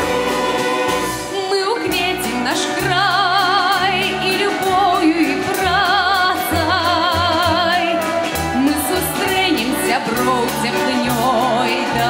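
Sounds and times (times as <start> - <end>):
instrumental accompaniment with bass line: 0.0 - 12.0
woman singing folk song with vibrato: 0.0 - 12.0.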